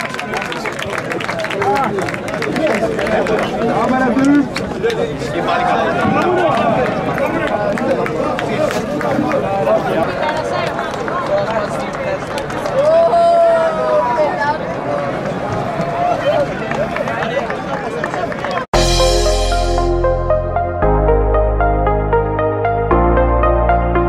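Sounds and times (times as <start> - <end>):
players shouting and chattering: 0.0 - 18.6.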